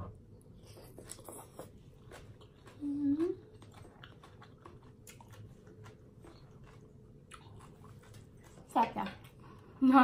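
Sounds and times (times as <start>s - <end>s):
person chewing food: 0.4s - 9.7s.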